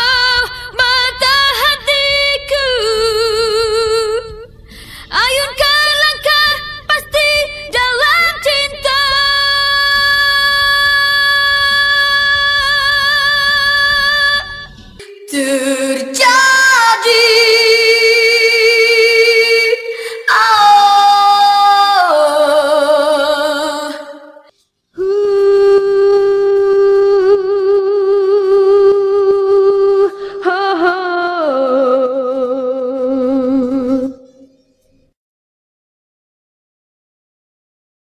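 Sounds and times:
woman singing long high note: 8.9s - 34.2s.

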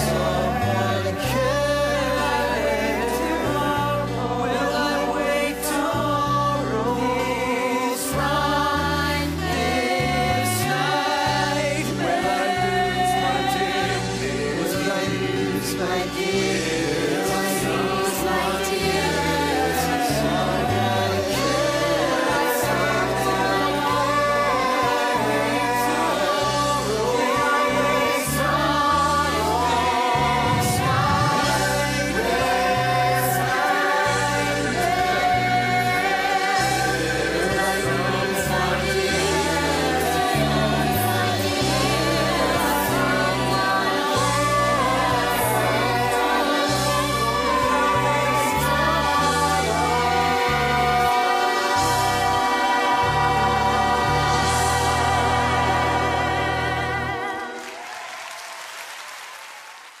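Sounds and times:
choir singing: 0.0s - 58.5s
audience applauding: 57.2s - 60.0s.

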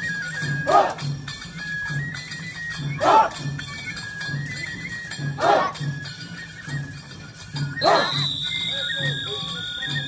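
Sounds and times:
high held flute: 0.0s - 10.0s
loud shout: 7.8s - 8.2s.

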